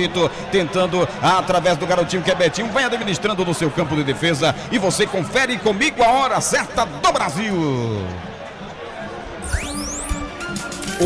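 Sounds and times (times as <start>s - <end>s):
radio jingle with electronic sweep: 9.4s - 10.3s.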